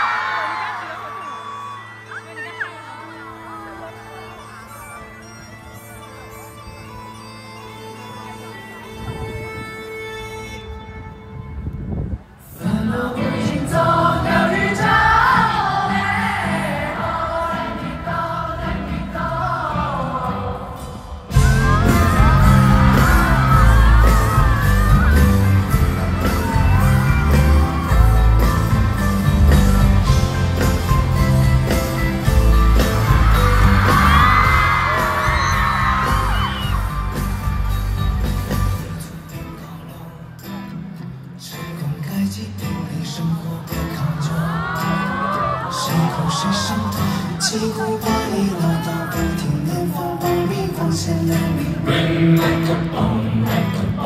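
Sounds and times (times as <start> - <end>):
crowd screaming: 0.0 - 4.7, 21.3 - 38.9, 44.2 - 49.6
live concert music: 0.0 - 54.0
wavering sung voices: 12.4 - 28.4, 43.2 - 54.0.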